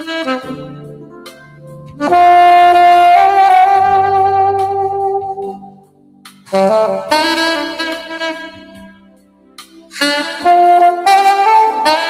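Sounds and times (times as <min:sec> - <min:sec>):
saxophone playing slow melody: 0:00.0 - 0:12.0
soft sustained accompaniment: 0:00.1 - 0:11.9.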